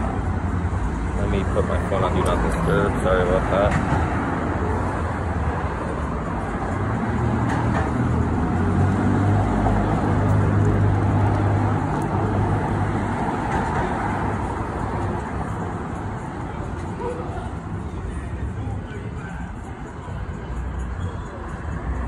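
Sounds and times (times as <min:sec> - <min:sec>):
passing motor vehicles: 0:00.0 - 0:22.0.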